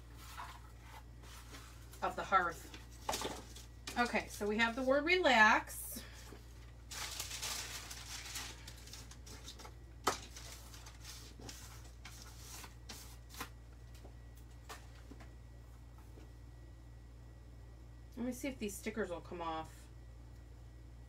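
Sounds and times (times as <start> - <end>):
paper rustling: 0.0 - 5.0, 6.2 - 14.0
steady low hum: 0.0 - 21.0.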